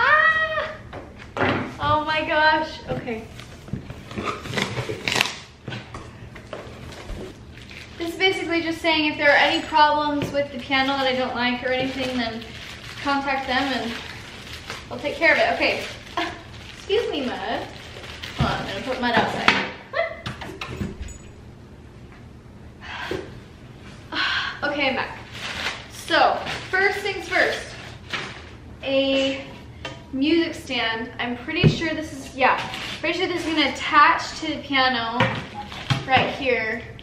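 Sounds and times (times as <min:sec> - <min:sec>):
paper and plastic packaging rustling: 0:02.9 - 0:19.5, 0:24.8 - 0:28.6, 0:32.3 - 0:34.0, 0:35.4 - 0:36.4.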